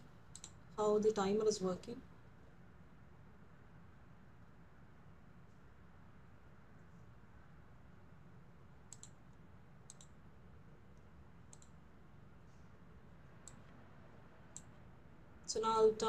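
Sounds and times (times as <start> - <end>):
faint computer mouse clicks: 0.3 - 0.6, 8.9 - 9.2, 9.8 - 10.2, 11.5 - 11.8.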